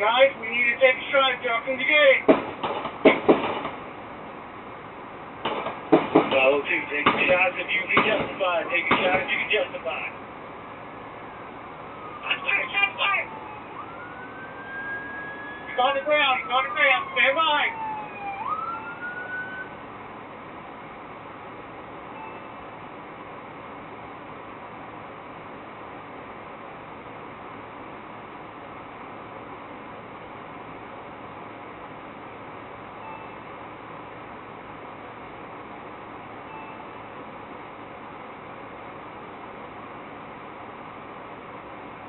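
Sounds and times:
voices: 0.0s - 2.3s, 6.2s - 10.2s, 12.1s - 13.5s, 15.6s - 17.8s
police siren wailing: 10.9s - 19.8s.

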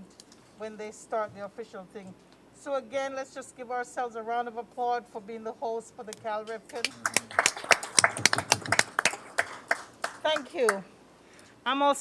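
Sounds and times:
small group clapping: 6.7s - 10.8s.

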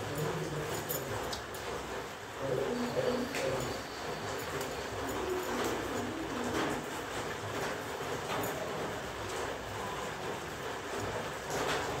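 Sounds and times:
rain falling steadily: 0.0s - 12.0s.

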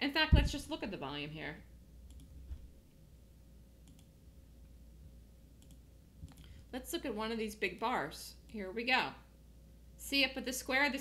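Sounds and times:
low room hum: 0.0s - 11.0s
faint computer mouse clicks: 3.8s - 4.1s, 5.6s - 6.6s.

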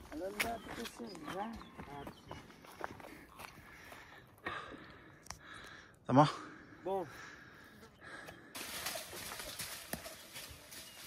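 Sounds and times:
leaves and branches rustling: 8.4s - 11.0s
sharp knocks on branches: 8.6s - 11.0s.

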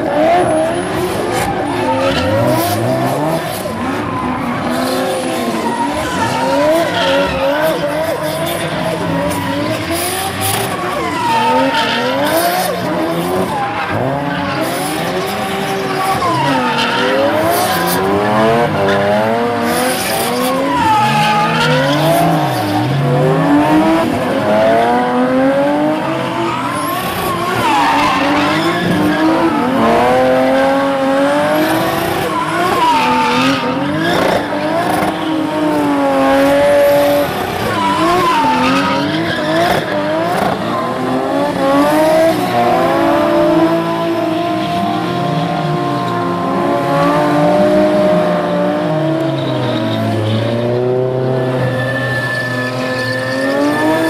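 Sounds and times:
car engines revving: 0.0s - 54.0s
tyres squealing and skidding: 0.0s - 54.0s.

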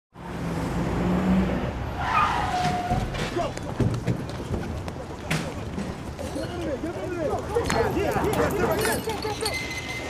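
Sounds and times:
street noise: 0.1s - 10.0s.

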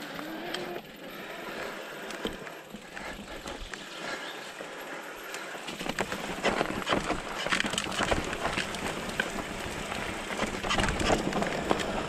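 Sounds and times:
bike clicks and rattles: 0.0s - 12.0s
tyres rushing on dirt: 0.0s - 12.0s.

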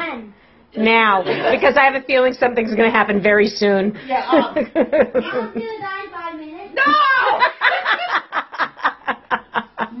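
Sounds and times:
person laughing: 7.7s - 10.0s.

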